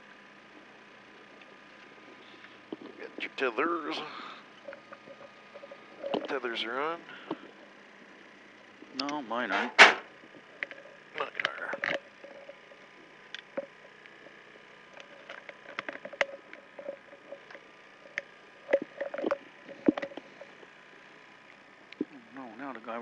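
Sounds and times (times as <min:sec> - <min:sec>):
steady low hum: 0:00.0 - 0:23.0
gear clicking and rustling: 0:01.2 - 0:20.8.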